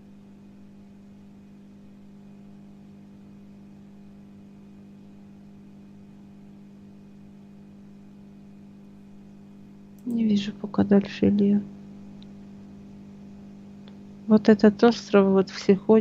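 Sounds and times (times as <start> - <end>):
electrical hum: 0.0 - 16.0.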